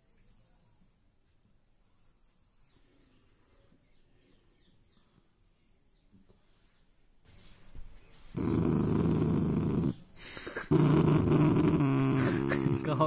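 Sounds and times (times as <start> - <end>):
puppy growling: 8.4 - 13.0.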